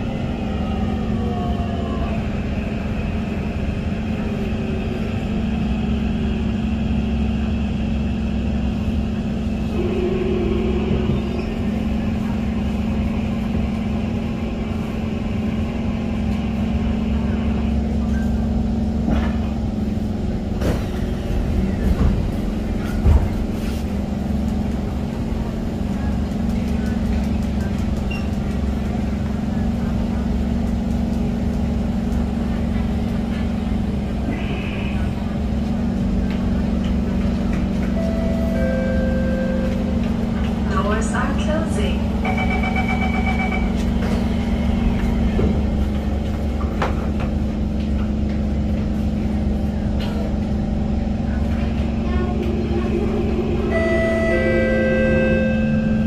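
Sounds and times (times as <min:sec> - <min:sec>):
train low running hum: 0:00.0 - 0:56.0.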